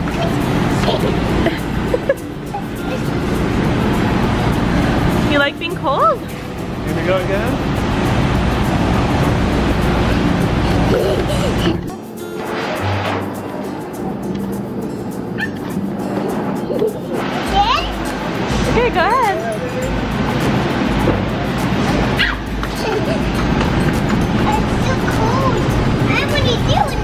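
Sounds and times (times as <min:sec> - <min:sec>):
background music: 0:00.0 - 0:27.0
child squealing: 0:15.4 - 0:15.7, 0:22.2 - 0:22.5.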